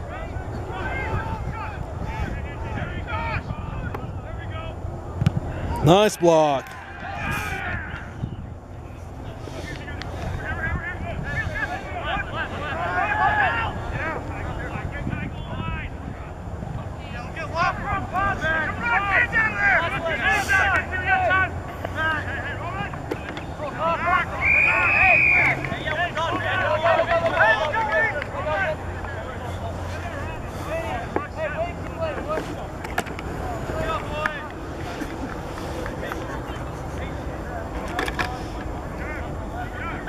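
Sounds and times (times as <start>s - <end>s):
wind rumbling on microphone: 0.0s - 4.5s, 7.0s - 8.7s, 13.7s - 17.0s
players shouting: 0.0s - 40.0s.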